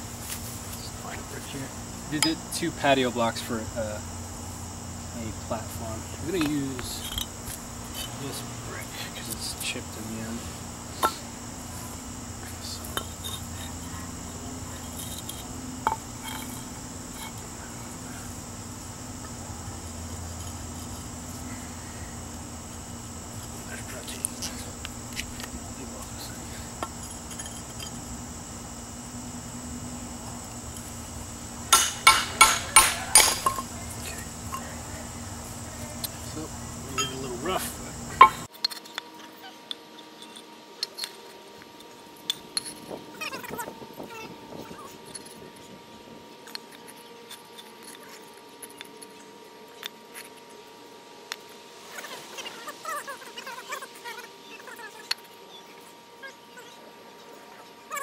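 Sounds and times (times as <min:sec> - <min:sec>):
hammer striking chisel on brick: 0:31.7 - 0:33.7.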